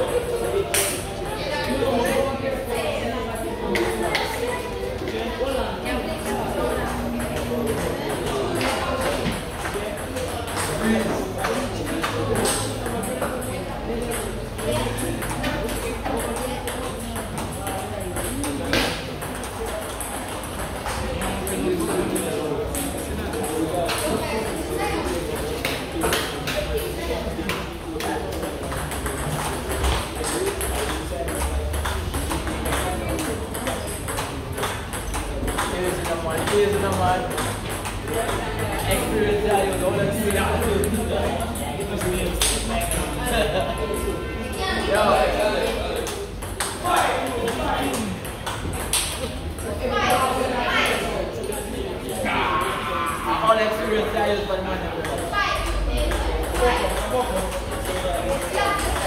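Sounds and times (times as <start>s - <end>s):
voices: 0.0s - 59.0s
table tennis ball clicking: 28.0s - 39.0s.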